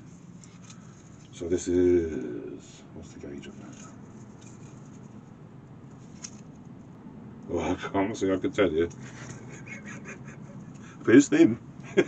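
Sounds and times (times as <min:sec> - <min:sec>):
light rustling: 0:03.4 - 0:06.8.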